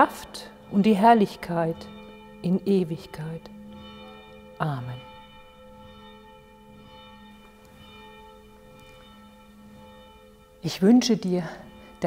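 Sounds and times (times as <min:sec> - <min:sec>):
church bell ringing: 0:00.0 - 0:12.0.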